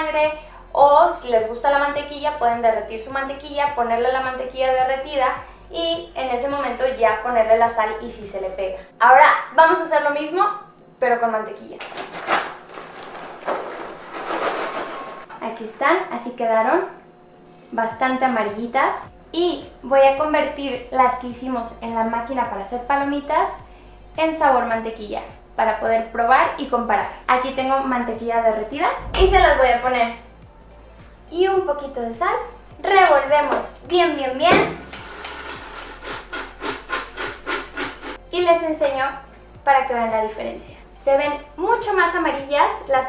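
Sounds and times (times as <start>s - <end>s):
paper bag crinkling: 11.8s - 15.3s
popcorn shaken in steel bowl: 11.9s - 15.3s, 34.9s - 38.2s.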